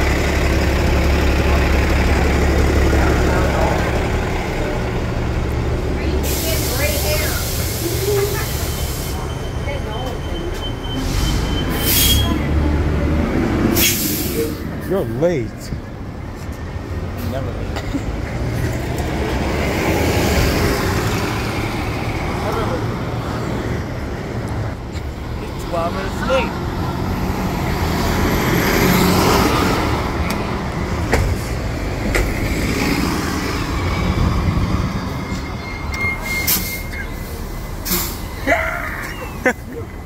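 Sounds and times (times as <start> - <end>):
bus driving past: 0.0 - 40.0
bus engines running: 0.0 - 40.0
street traffic: 0.0 - 40.0.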